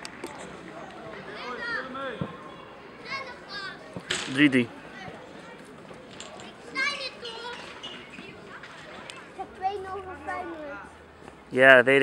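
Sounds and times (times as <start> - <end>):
distant outdoor voices: 0.0 - 12.0
faint background chatter: 0.0 - 12.0.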